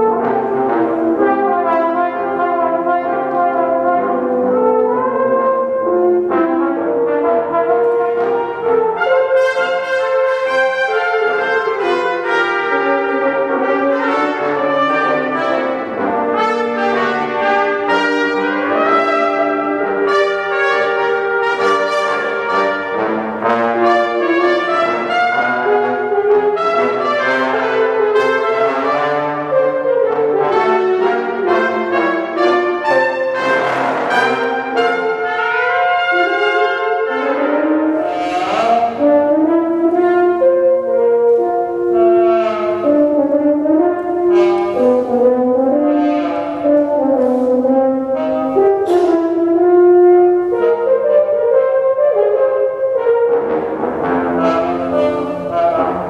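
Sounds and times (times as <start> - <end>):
brass quintet playing: 0.0 - 56.0.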